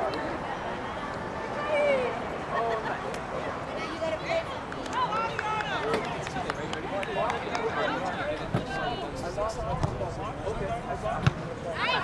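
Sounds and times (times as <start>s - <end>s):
spectators talking and calling out: 0.0s - 12.0s
soccer ball kick thump: 9.7s - 10.0s, 11.1s - 11.4s.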